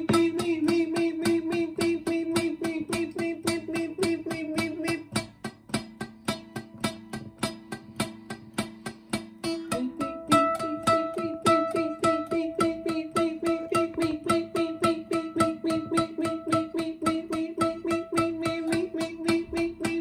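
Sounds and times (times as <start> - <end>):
acoustic guitar strumming: 0.0 - 20.0.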